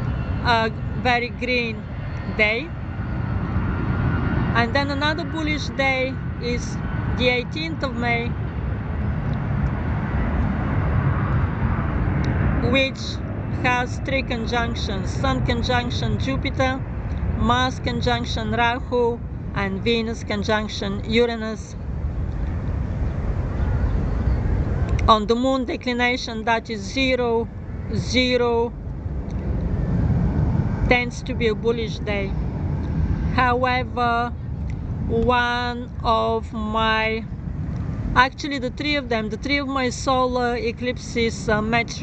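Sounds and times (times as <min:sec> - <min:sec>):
wind rumble on microphone: 0:00.0 - 0:42.0.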